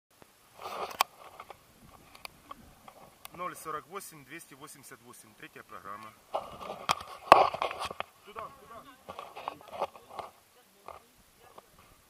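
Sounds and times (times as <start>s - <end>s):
camera handling rustle: 0.6s - 3.4s, 6.3s - 8.1s, 9.0s - 11.0s.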